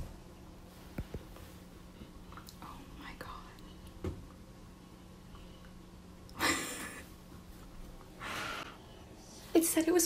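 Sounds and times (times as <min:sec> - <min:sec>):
low steady hum: 0:00.0 - 0:10.0
faint whispering: 0:02.5 - 0:03.8.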